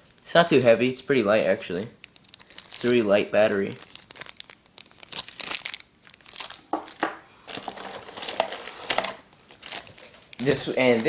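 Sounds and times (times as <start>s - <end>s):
plastic wrapping crinkling: 2.0s - 11.0s.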